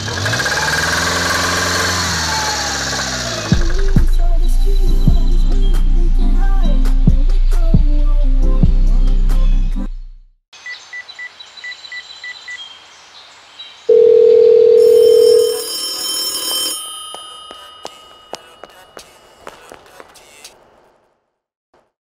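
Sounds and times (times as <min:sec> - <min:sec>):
short high telephone beeps: 0:13.9 - 0:19.3
loud steady telephone tone: 0:13.9 - 0:19.9
high metallic ringing: 0:14.1 - 0:19.6.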